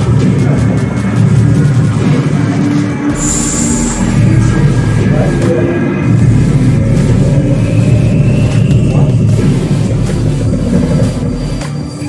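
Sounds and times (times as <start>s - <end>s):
deep rumble: 0.0s - 11.6s
sustained drone tones: 0.0s - 12.0s
high thin whistling tone: 3.2s - 4.6s, 7.3s - 10.0s.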